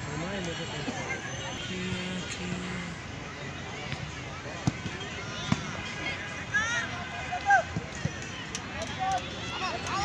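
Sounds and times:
distant shouting players: 0:00.2 - 0:10.0
football being kicked: 0:04.6 - 0:05.7.

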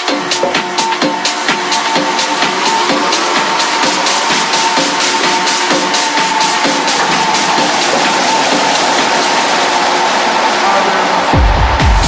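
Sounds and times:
held synth tone: 0:00.0 - 0:11.3
noisy wash: 0:00.0 - 0:12.0.

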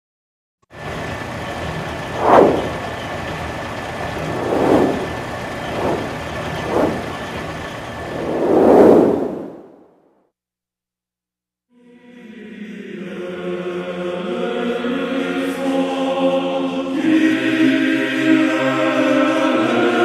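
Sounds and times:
steady rushing noise: 0:02.0 - 0:02.9, 0:03.9 - 0:09.7
swelling whooshes: 0:02.0 - 0:02.9, 0:04.0 - 0:07.4, 0:08.0 - 0:09.7.

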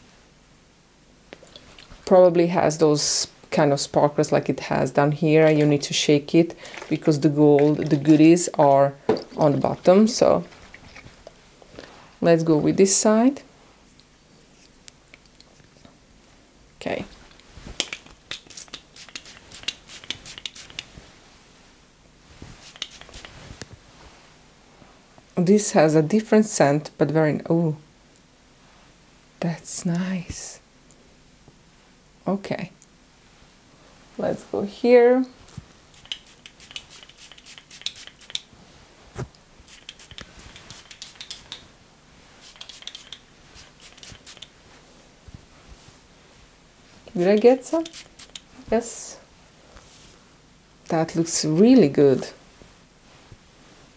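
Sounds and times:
hands crackling through dry hair: 0:17.7 - 0:21.0, 0:22.5 - 0:23.8, 0:35.5 - 0:38.5, 0:39.2 - 0:44.8, 0:47.1 - 0:48.6
spray bottle clicks and hiss: 0:17.8 - 0:20.9, 0:22.6 - 0:23.4, 0:36.0 - 0:38.5, 0:39.7 - 0:41.6, 0:42.4 - 0:44.6, 0:47.8 - 0:48.5.

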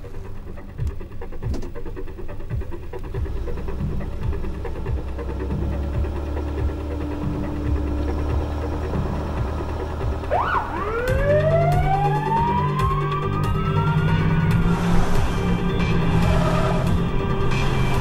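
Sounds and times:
car engine running: 0:00.0 - 0:18.0
siren whoop and wail: 0:10.0 - 0:14.7.

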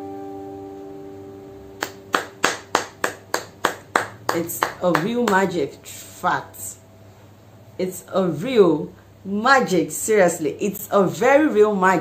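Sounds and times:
song held notes: 0:00.0 - 0:05.3
hands clapping: 0:01.8 - 0:05.5.

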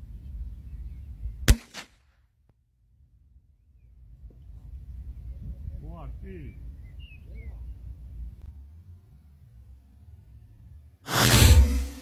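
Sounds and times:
rifle shot crack: 0:01.5 - 0:02.1, 0:11.1 - 0:12.0.

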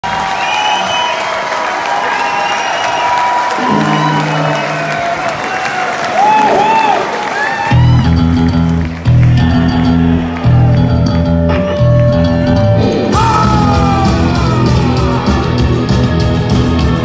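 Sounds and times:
crowd cheering and whistling: 0:00.0 - 0:16.9
live rock band: 0:03.5 - 0:17.0.

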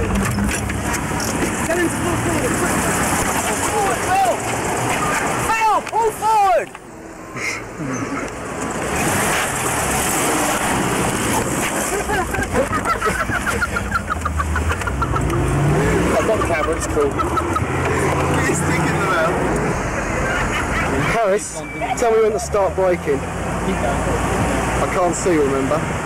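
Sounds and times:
indistinct voices talking: 0:00.0 - 0:08.4, 0:12.2 - 0:25.9
car engine and road noise: 0:00.0 - 0:26.0.

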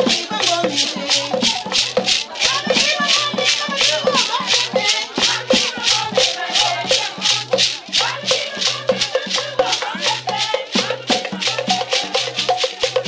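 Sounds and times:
rattles shaken rhythmically: 0:00.0 - 0:13.0
voices singing: 0:00.0 - 0:13.0.

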